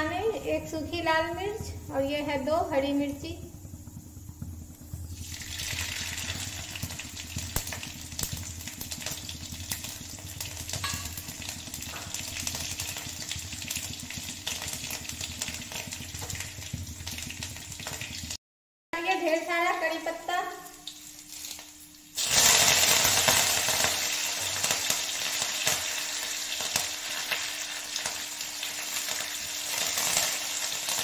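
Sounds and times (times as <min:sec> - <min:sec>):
spices sizzling in hot oil: 0:00.0 - 0:18.4, 0:19.0 - 0:31.0
seeds crackling and popping: 0:03.0 - 0:18.3.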